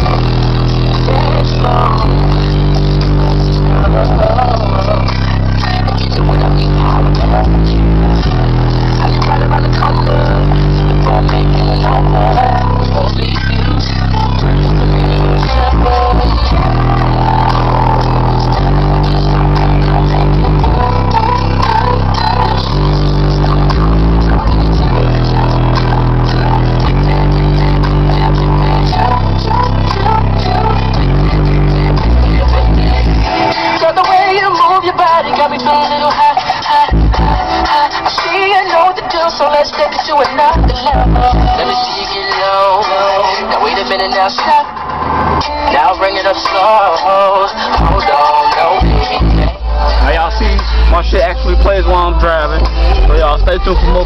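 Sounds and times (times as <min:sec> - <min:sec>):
bass-heavy rap on car stereo: 0:00.0 - 0:54.0.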